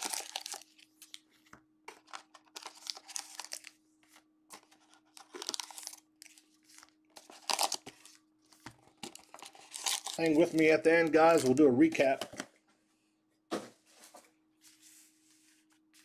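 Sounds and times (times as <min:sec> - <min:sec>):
foil wrapper crinkling: 0:00.0 - 0:01.3, 0:02.0 - 0:03.8, 0:04.7 - 0:12.1.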